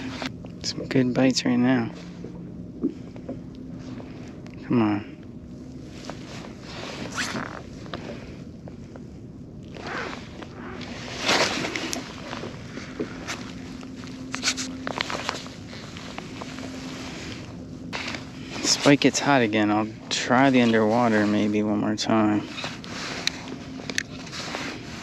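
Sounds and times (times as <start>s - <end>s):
faint steady hum: 0.0s - 25.0s
fishing gear handling scrapes: 6.1s - 8.0s, 9.7s - 19.5s, 22.4s - 25.0s.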